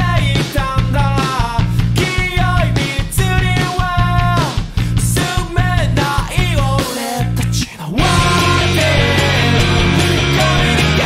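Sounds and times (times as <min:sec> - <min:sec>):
loud guitar-driven rock band: 0:00.0 - 0:07.4, 0:08.0 - 0:11.0.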